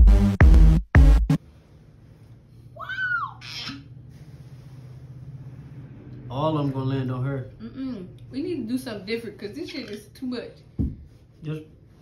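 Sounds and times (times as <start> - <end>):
electronic music: 0.0 - 1.4
high-pitched vocal cry: 2.8 - 3.9.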